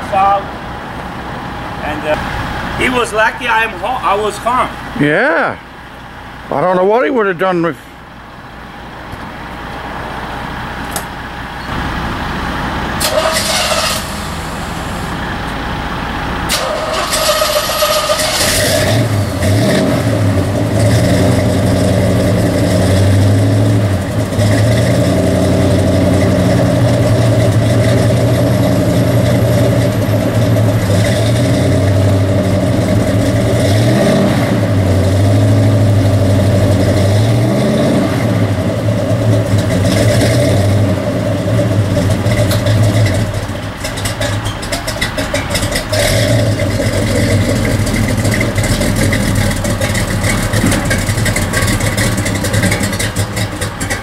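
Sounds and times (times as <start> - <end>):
car engine revving: 11.8 - 54.0.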